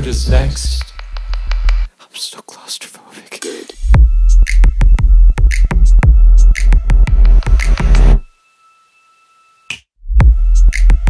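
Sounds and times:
electronic dance music: 4.0 - 8.3.

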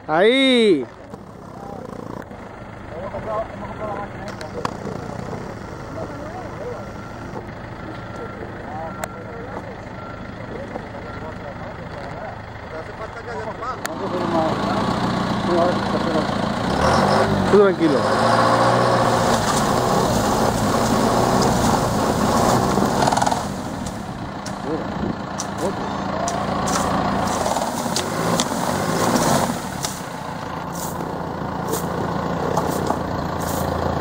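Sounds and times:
tractor engine droning: 0.0 - 34.0
faint voices: 0.8 - 16.4, 24.5 - 27.7.

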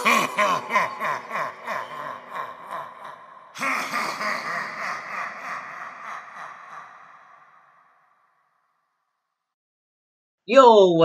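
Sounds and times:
recorded evil laugh: 0.0 - 8.3.

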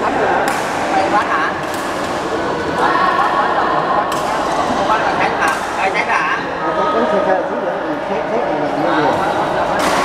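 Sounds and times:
echoing chatter of players: 0.0 - 10.0
racket hitting shuttlecock: 0.4 - 1.0, 1.6 - 2.8, 5.4 - 5.8.

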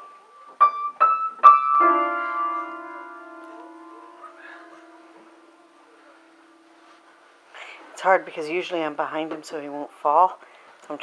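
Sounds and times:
piano notes: 0.0 - 7.3.

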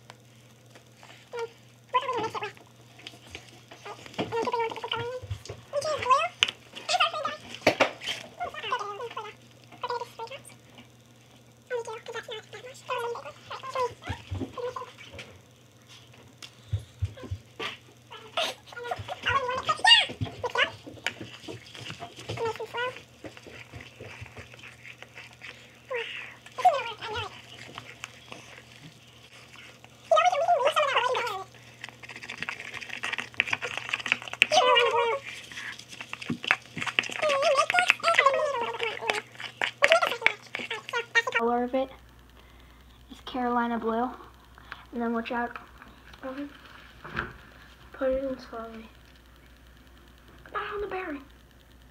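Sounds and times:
children talking: 3.8 - 10.6, 11.7 - 15.2, 18.1 - 21.0, 22.2 - 23.0, 25.9 - 27.8, 30.0 - 31.6, 34.5 - 35.4, 37.1 - 42.0
metal spoon stirring in plastic bowl: 18.2 - 41.9.

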